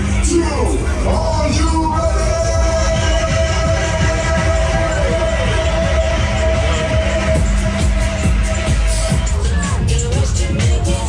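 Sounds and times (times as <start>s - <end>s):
fairground ride music: 0.0s - 11.0s.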